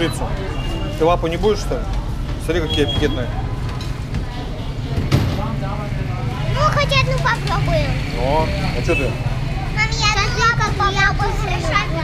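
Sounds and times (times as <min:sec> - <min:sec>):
street rumble: 0:00.0 - 0:12.0.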